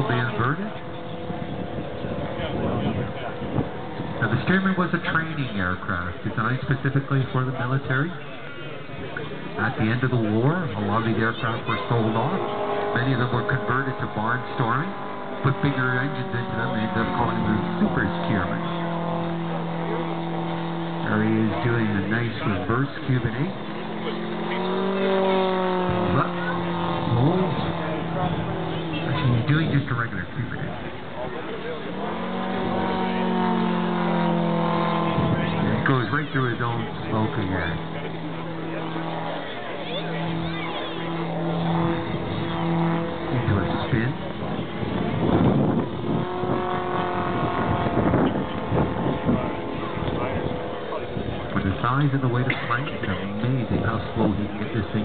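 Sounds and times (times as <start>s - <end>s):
model airplane engine droning: 0.0s - 55.0s
murmur of voices: 0.0s - 55.0s.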